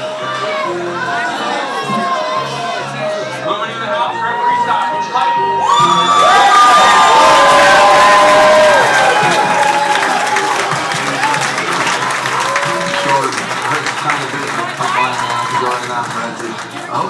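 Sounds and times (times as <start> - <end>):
crowd cheering and shouting: 0.0 - 17.0.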